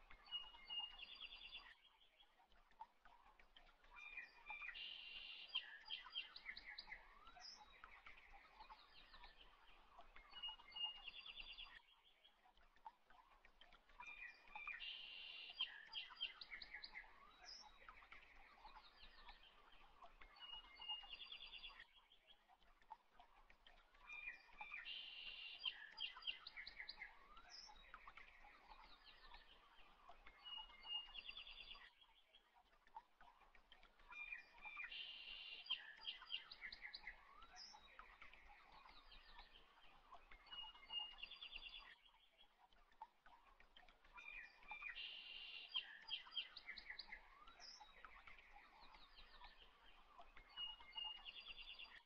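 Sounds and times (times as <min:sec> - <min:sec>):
faint birdsong chirps and trills: 0:00.0 - 0:52.0.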